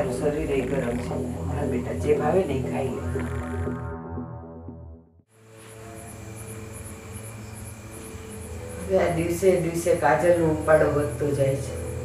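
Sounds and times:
crickets chirping: 0.0s - 3.8s, 5.3s - 12.0s.

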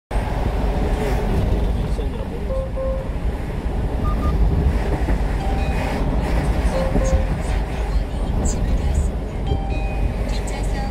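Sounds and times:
truck engine and road rumble: 0.1s - 10.9s
short electronic beeps: 4.0s - 4.4s, 5.4s - 6.1s, 6.7s - 7.4s, 9.5s - 10.6s.

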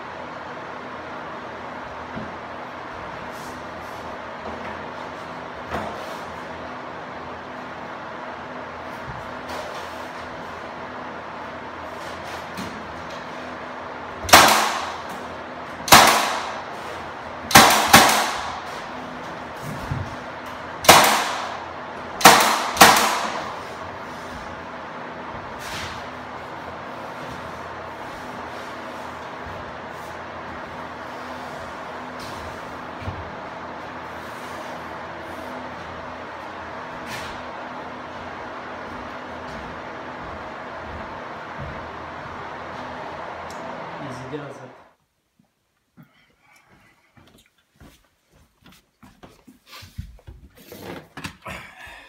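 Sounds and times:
nail gun shots: 14.3s - 15.1s, 15.8s - 16.7s, 17.5s - 18.7s, 20.8s - 21.6s, 22.2s - 23.6s.

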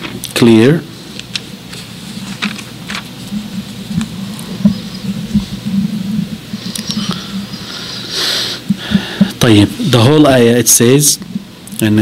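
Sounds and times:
scratchy rustling: 1.3s - 7.1s.

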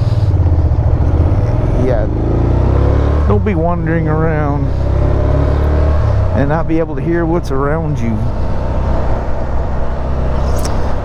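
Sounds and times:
motorcycle engine running: 0.0s - 11.0s
road noise: 0.0s - 11.0s.

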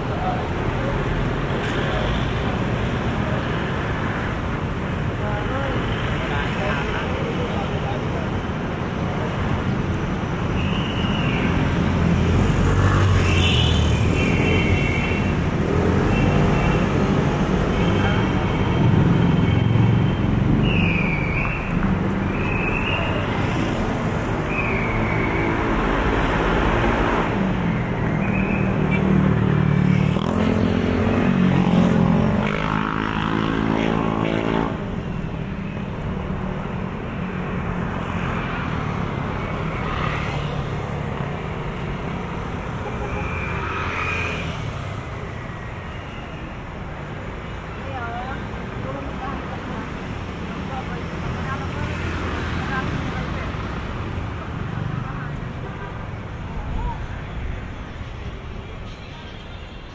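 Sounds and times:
motorcycles passing: 0.0s - 59.9s
road noise: 0.0s - 59.9s.

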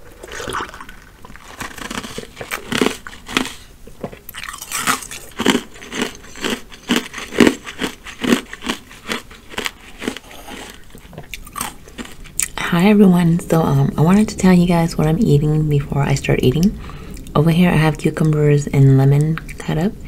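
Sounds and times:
mouth crunching ice cubes: 0.0s - 3.7s, 4.3s - 12.6s.

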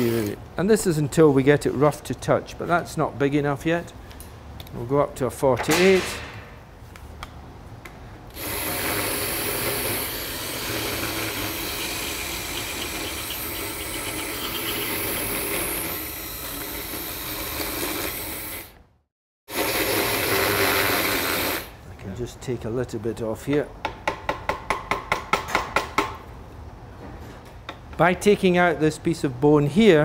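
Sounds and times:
powered reamer whirring and grinding: 8.4s - 18.7s.

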